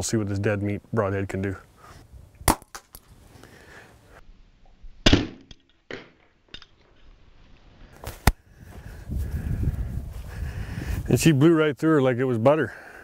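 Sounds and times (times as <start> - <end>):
arrow striking bone: 2.5 - 3.0, 5.0 - 6.9, 8.0 - 8.4.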